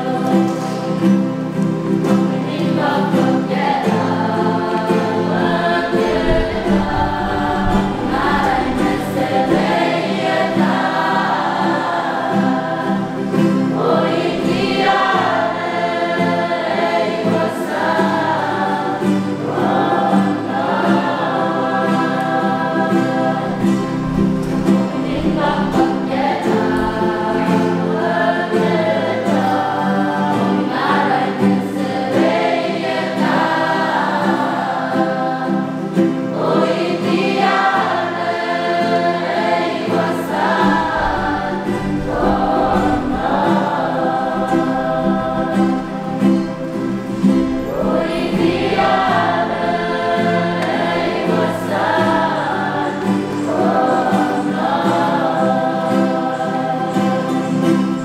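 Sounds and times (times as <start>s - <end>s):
acoustic guitars: 0.0s - 58.0s
young voices singing a hymn: 0.0s - 58.0s.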